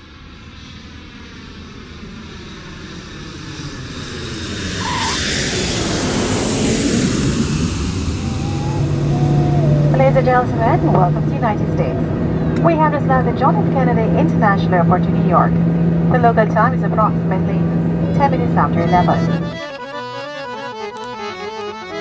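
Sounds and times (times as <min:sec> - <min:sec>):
jet airliner engine noise: 0:00.6 - 0:19.2.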